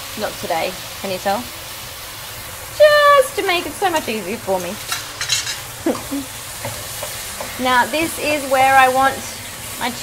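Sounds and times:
chicken sizzling in frying pan: 0:00.0 - 0:10.0.

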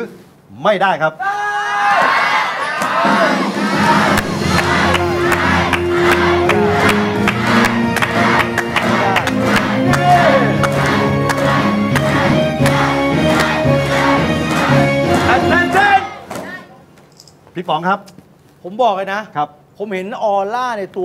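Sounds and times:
audience cheering and clapping: 0:01.9 - 0:16.5
game-show music: 0:03.0 - 0:16.3.

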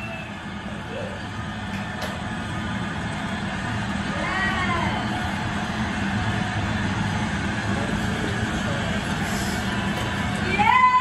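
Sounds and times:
crowd noise through tv speaker: 0:00.0 - 0:11.0.

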